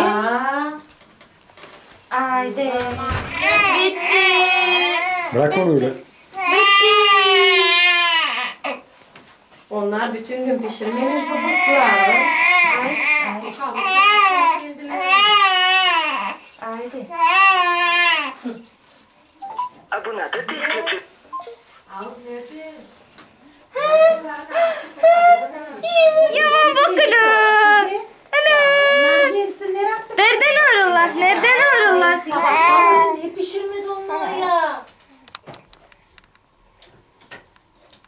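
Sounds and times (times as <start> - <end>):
baby crying: 3.3 - 5.3, 6.4 - 8.8, 10.9 - 16.4, 32.3 - 33.2.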